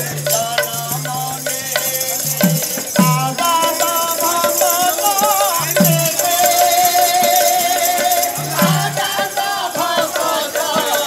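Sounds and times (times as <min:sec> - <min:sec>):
man singing through a microphone: 0:00.0 - 0:11.0.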